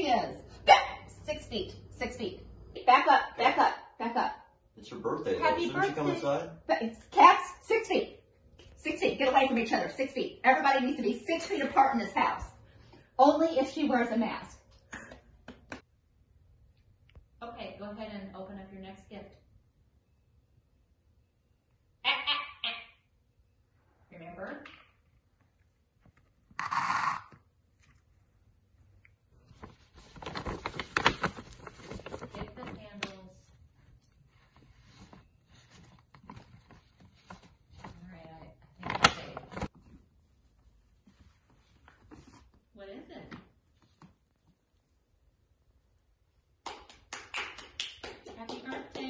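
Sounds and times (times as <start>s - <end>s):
hand claps: 14.9s - 15.8s, 46.6s - 49.0s.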